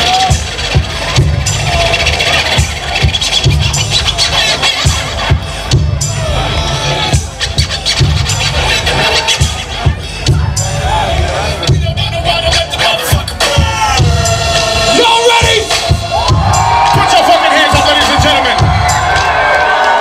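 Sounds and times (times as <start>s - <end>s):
record scratching on turntable: 0.0s - 5.7s
loud hip hop beat: 0.0s - 20.0s.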